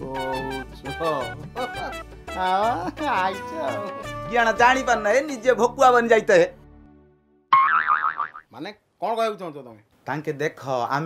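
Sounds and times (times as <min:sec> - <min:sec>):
cartoon boing: 0:07.5 - 0:08.5.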